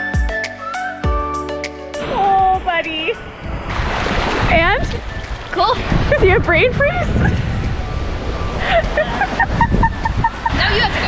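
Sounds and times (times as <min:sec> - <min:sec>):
gentle surf washing in: 0:02.0 - 0:11.0
wind buffeting microphone: 0:02.0 - 0:11.0.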